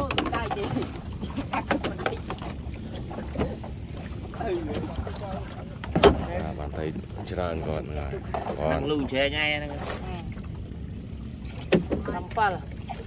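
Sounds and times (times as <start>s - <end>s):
low steady rumble: 0.0s - 13.0s.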